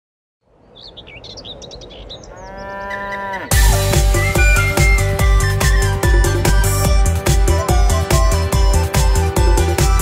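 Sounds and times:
birds chirping: 0.5s - 10.0s
cow mooing: 2.3s - 3.7s
electronic dance-pop music: 3.5s - 10.0s.

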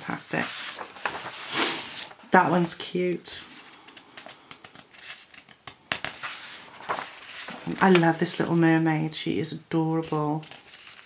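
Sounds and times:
paper pages rustling: 0.1s - 9.2s, 9.8s - 11.0s
sharp paper crackle: 0.4s - 2.2s, 3.5s - 8.7s, 10.4s - 11.0s.

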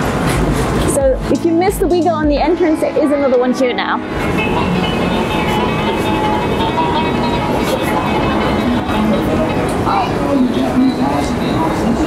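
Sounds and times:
background music: 0.0s - 12.0s
street noise with low rumble: 0.0s - 12.0s.

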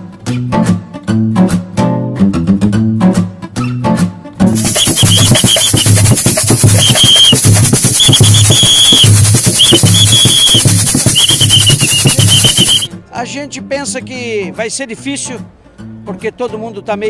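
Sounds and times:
bass drum beating: 4.5s - 12.9s
metal tube shaker hissing: 4.5s - 12.9s
whistle blown: 4.6s - 12.9s.

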